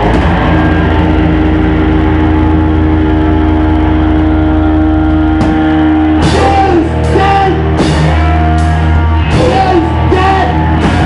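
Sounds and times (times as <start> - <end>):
distorted electric guitar and bass drone: 0.0 - 11.0.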